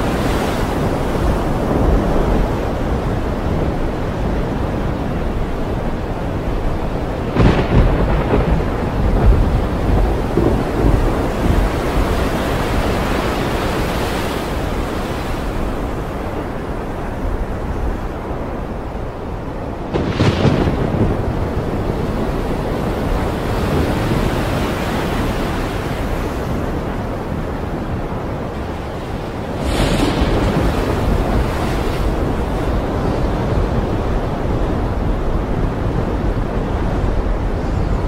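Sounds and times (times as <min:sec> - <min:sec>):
steady rushing noise: 0:00.0 - 0:38.0.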